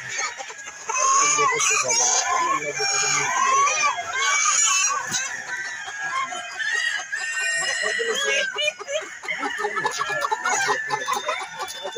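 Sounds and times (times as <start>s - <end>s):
hens clucking: 0.0s - 11.9s
rooster crowing: 5.4s - 11.9s.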